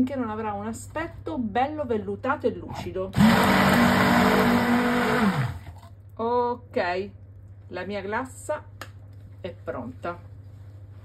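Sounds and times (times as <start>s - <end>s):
immersion blender motor: 3.2s - 5.8s.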